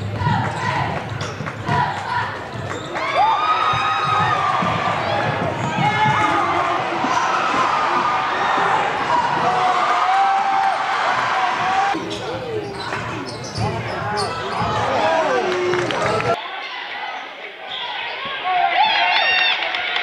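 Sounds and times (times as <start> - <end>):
crowd voices: 0.0 - 20.0
shoe squeaks: 2.5 - 3.2, 12.0 - 15.0.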